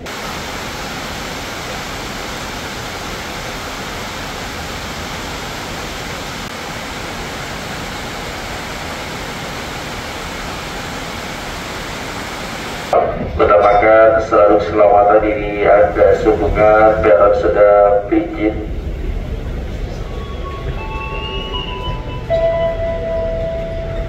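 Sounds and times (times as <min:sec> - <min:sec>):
steady rushing hiss: 0:00.0 - 0:22.6.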